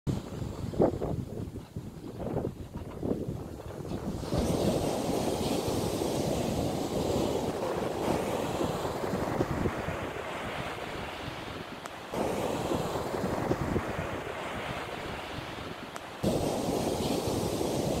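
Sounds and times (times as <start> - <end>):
surf washing on sand: 0.1 - 18.0
wind buffeting microphone: 0.1 - 18.0.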